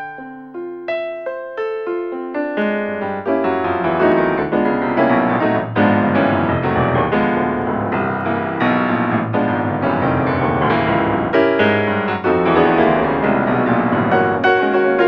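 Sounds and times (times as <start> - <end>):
piano chords and runs: 0.0 - 15.0.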